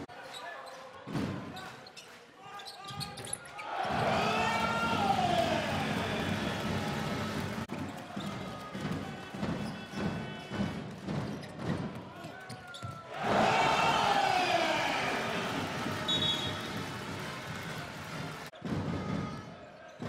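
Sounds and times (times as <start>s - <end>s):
crowd noise: 0.0s - 20.0s
crowd cheering loudly: 3.5s - 10.6s, 13.0s - 18.5s.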